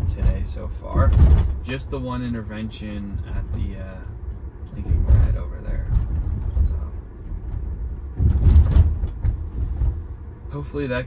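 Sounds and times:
road and tyre rumble in car: 0.0s - 11.0s.

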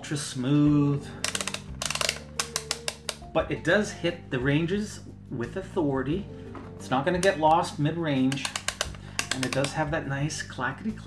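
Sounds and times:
background music: 0.0s - 11.0s
rotary selector clicking: 1.2s - 3.2s, 8.3s - 9.8s.

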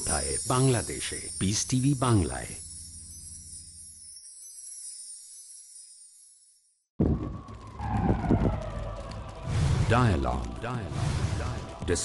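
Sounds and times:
siren-like tone sliding down: 7.0s - 10.0s
loud low boom: 7.0s - 11.6s
low rumble: 7.0s - 11.8s.

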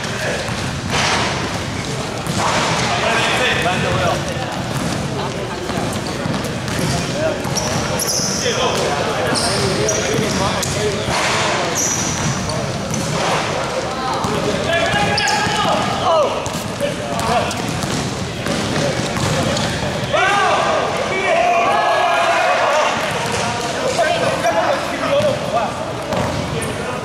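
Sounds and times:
sneakers squeaking: 0.0s - 20.2s, 22.9s - 27.0s
basketball bouncing on court floor: 0.4s - 8.0s, 8.7s - 13.5s, 14.2s - 20.0s, 26.1s - 26.6s.

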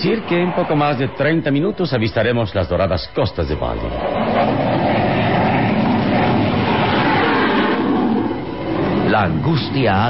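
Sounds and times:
airplane engine drone: 0.0s - 10.0s.

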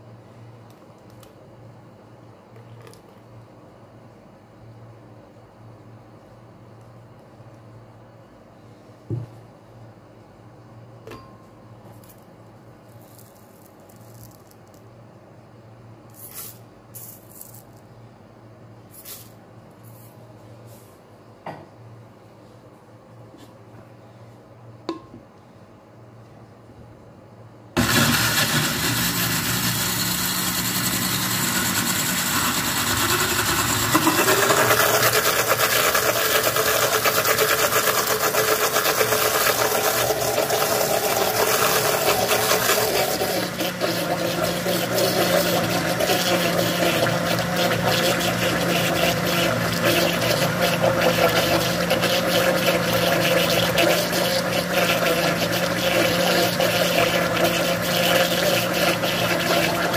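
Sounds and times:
blender motor running: 27.8s - 59.9s
milk pouring: 27.8s - 59.9s.

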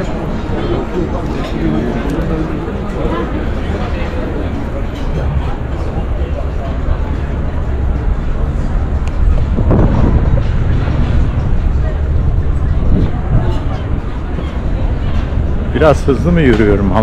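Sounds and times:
passersby talking: 0.0s - 17.0s
steady low rumble: 0.0s - 17.0s.

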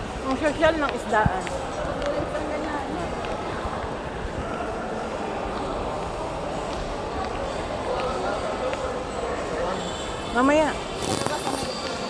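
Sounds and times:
background chatter of people: 0.0s - 12.0s.

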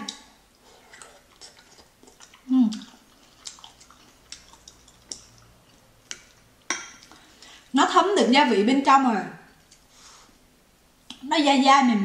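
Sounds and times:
mouth chewing wet smacks: 0.1s - 7.6s.

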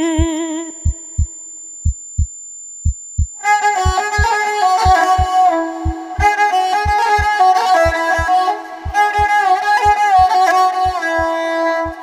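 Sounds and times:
heartbeat thumps: 0.0s - 9.4s, 10.2s - 12.0s.

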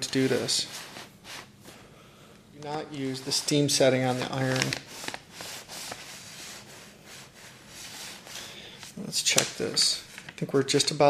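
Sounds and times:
iron scraping over paper: 0.0s - 1.6s, 2.9s - 10.2s.

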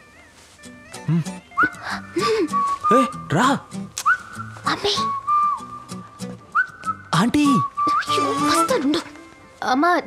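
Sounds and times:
background music: 0.0s - 10.0s
whistling with upward slides: 1.5s - 3.2s, 4.0s - 8.9s.

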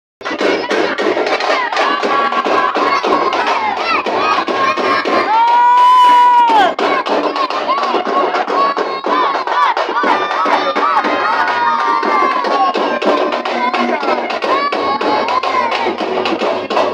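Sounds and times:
crowd shouting: 0.2s - 16.9s
fast steady drumming: 0.2s - 16.9s.

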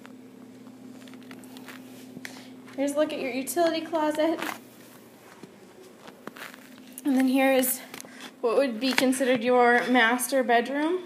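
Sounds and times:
soft footsteps: 0.0s - 9.8s
steady low hum: 0.0s - 11.0s.

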